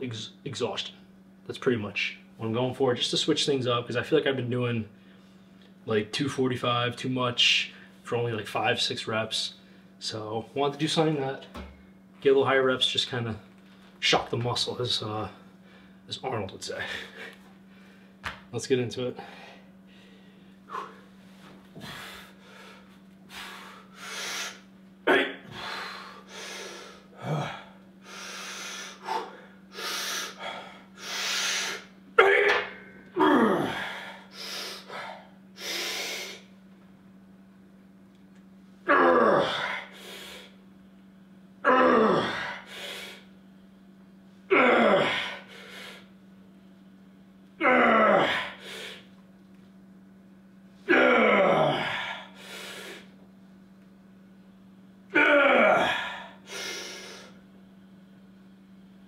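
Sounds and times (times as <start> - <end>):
man breathing heavily: 16.8 - 18.2, 19.1 - 24.7, 25.3 - 31.9, 33.2 - 36.5, 39.4 - 40.6, 42.0 - 43.3, 44.8 - 46.1, 48.0 - 49.1, 51.6 - 53.2, 55.6 - 57.4
man grunting: 25.1 - 25.6, 27.2 - 27.8, 32.2 - 34.2, 38.9 - 39.9, 41.6 - 42.7, 44.5 - 45.5, 47.6 - 48.6, 50.9 - 52.3, 55.1 - 56.4.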